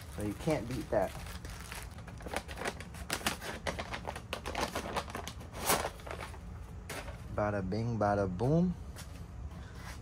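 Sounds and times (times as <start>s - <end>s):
cardboard and paper crackling: 0.0s - 7.4s.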